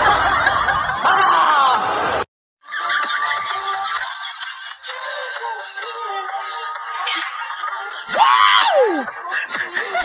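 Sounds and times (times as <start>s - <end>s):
person laughing: 8.8s - 10.0s.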